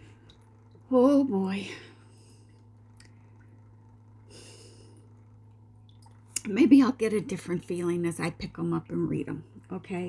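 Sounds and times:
steady low hum: 0.0s - 10.0s
person breathing softly: 4.3s - 5.1s.

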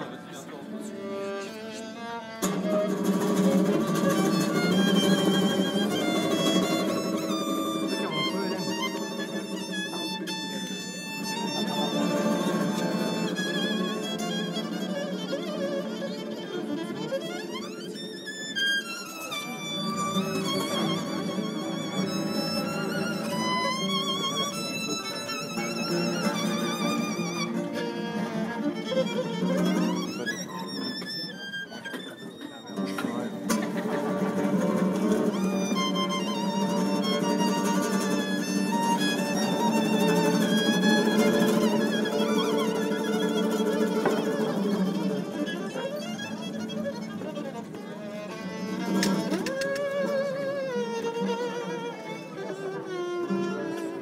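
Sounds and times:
violin melody with vibrato: 0.1s - 54.0s
acoustic guitars strumming: 2.4s - 10.4s, 11.2s - 14.7s, 32.8s - 47.3s.

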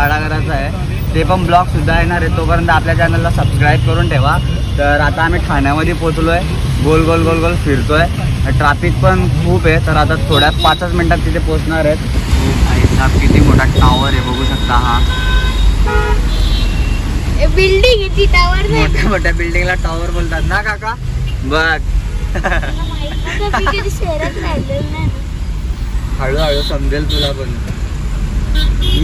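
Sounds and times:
low traffic rumble: 0.0s - 29.0s
vehicle horns honking: 10.3s - 11.2s, 13.8s - 17.2s, 26.1s - 27.6s, 28.5s - 29.0s
car cabin engine and road rumble: 17.0s - 29.0s.

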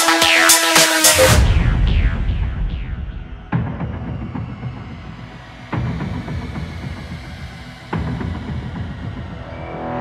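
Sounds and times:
dark pulsing background music: 0.0s - 10.0s
sharp hit: 0.8s - 7.6s.

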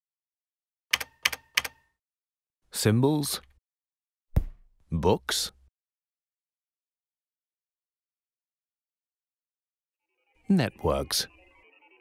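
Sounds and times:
typewriter keystrokes: 0.9s - 1.8s
person speaking: 10.5s - 11.4s.

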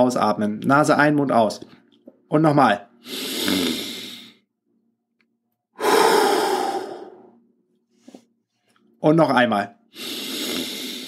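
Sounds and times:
person breathing into microphone: 5.8s - 7.3s.

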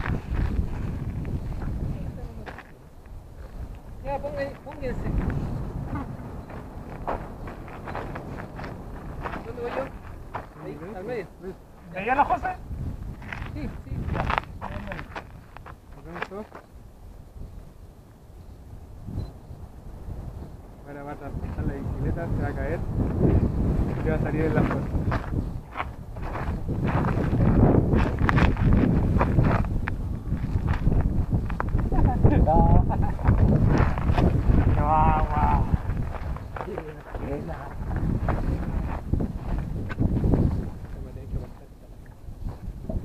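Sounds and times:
wind rumbling on microphone: 0.0s - 43.0s.

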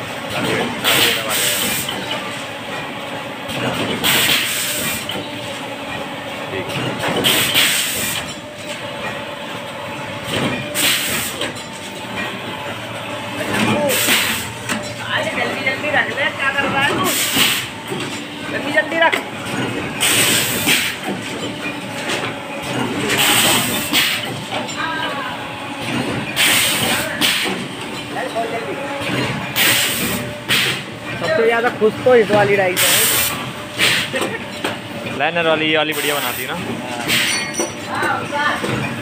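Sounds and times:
steady machine hum: 0.0s - 39.0s
pneumatic press hissing air: 0.8s - 2.0s, 4.0s - 5.2s, 7.2s - 8.3s, 10.7s - 11.6s, 13.8s - 14.5s, 17.1s - 17.7s, 20.0s - 21.1s, 23.1s - 24.3s, 26.4s - 27.7s, 29.6s - 30.9s, 32.8s - 34.2s, 37.0s - 37.6s.

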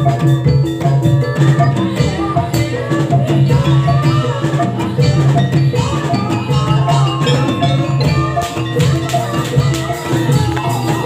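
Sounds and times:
drums: 0.0s - 11.0s
gamelan percussion ringing: 0.0s - 11.0s.

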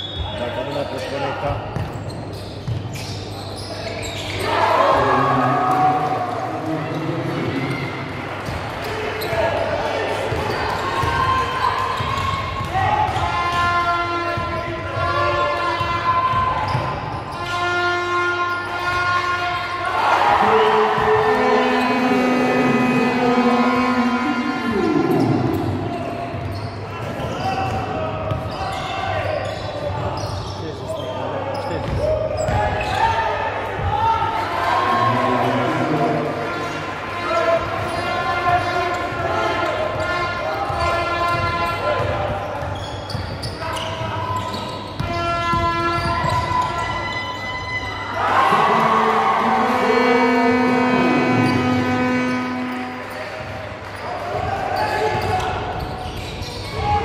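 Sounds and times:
long held pitched tones: 21.2s - 25.6s, 48.5s - 53.2s.

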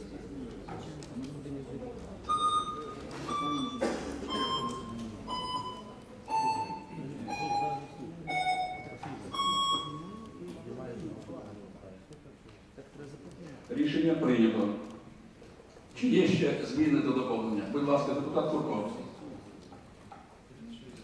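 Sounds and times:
murmur of voices: 0.0s - 21.0s.

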